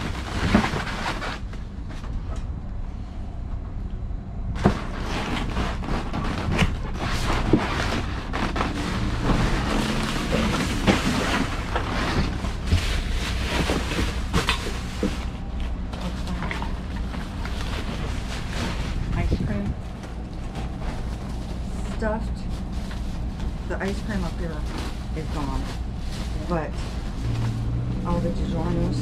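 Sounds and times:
trash bags and boxes rustling: 0.0 - 2.2, 4.6 - 29.0
steady low rumble: 0.0 - 29.0.

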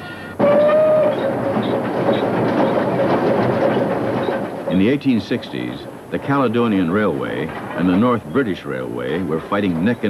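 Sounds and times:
locomotive whistle: 0.0 - 2.2
steam locomotive running: 0.0 - 10.0.

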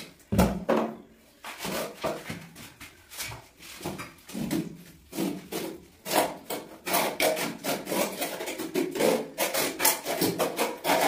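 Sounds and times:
trowel scraping mortar on tiles: 5.0 - 11.0.

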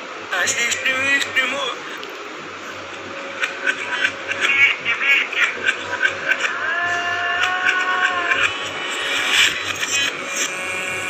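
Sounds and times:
reversed song through speaker: 0.0 - 11.0.

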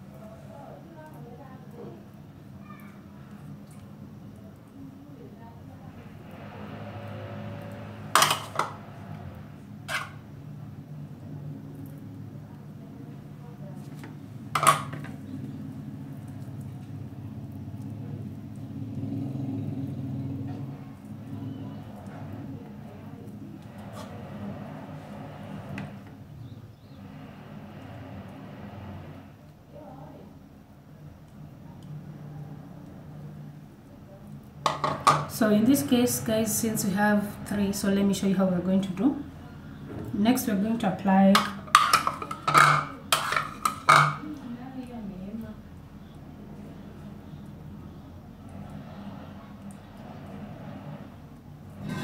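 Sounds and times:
low background hum: 0.0 - 52.0
cutlery clinking on plate: 41.4 - 44.2.

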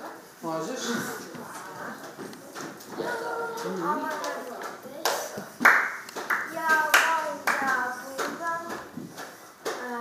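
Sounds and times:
hand claps in steady beat: 4.6 - 9.9.

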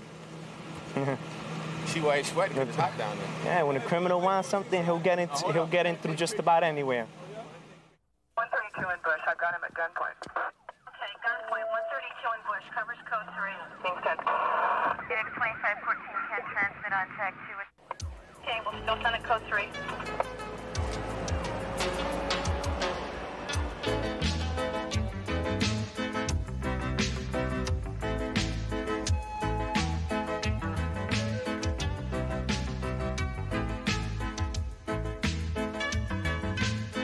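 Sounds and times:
low street hum: 0.0 - 36.8
short laugh-like voice: 0.9 - 1.2
radio static burst: 8.4 - 17.7
tinny voice over radio: 8.4 - 17.8.

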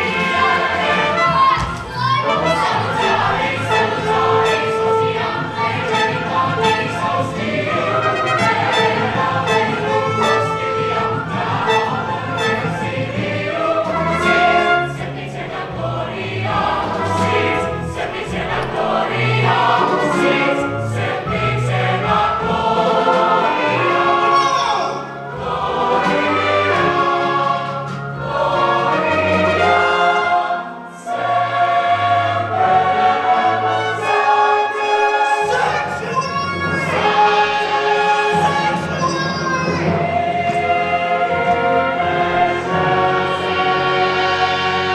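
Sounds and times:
choir singing with accompaniment: 0.0 - 44.9.

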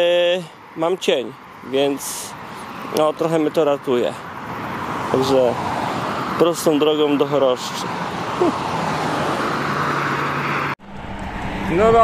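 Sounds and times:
tyres on asphalt: 0.0 - 12.0
low engine hum: 8.2 - 12.0.

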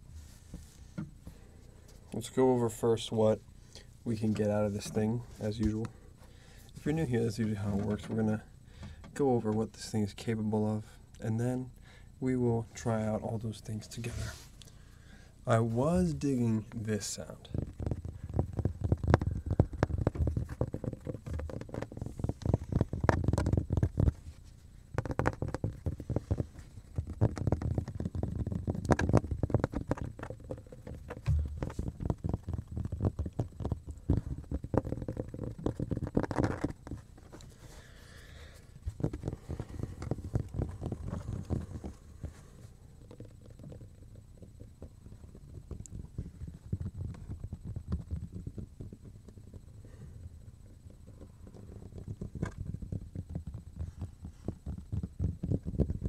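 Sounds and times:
muffled handling rumble: 0.0 - 56.0.

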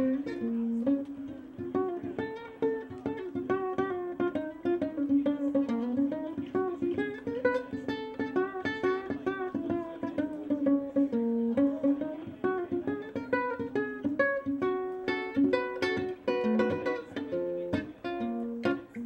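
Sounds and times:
fingerpicked ukulele: 0.0 - 19.0.

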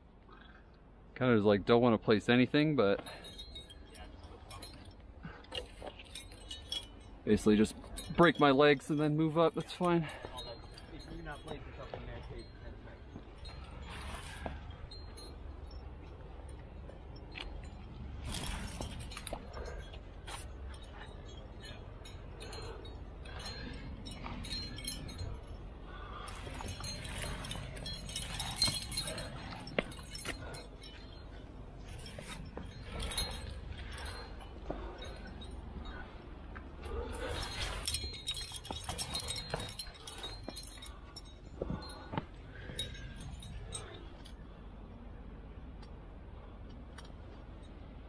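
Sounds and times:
climbing gear clinking: 1.4 - 48.0.

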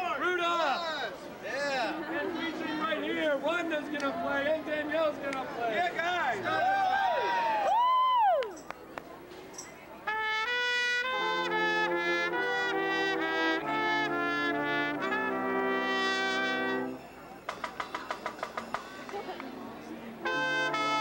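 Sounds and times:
brass ensemble playing chords: 10.0 - 17.2, 20.1 - 21.0.

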